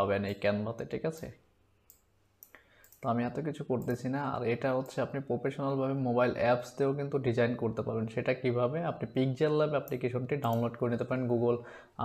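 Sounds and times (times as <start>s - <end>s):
computer mouse clicks: 1.9s - 3.1s.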